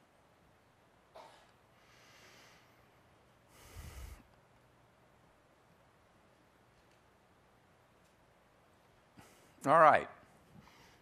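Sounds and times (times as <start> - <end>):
person breathing: 1.8 - 4.4, 10.6 - 11.0
short breath close to microphone: 3.5 - 4.3.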